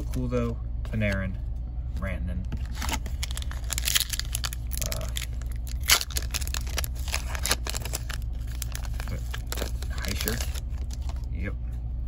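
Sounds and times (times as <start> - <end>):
foil wrapper crinkling: 2.6 - 11.3
foil wrapper ripping: 2.6 - 11.3.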